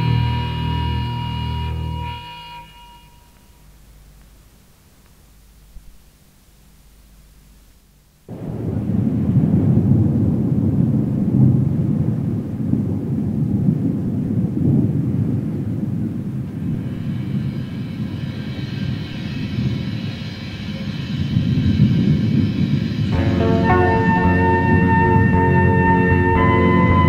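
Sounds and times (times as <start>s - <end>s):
dark keyboard chord: 0.0s - 3.5s, 23.1s - 27.0s
tape hiss: 0.0s - 27.0s
rumbling storm wind: 8.3s - 27.0s.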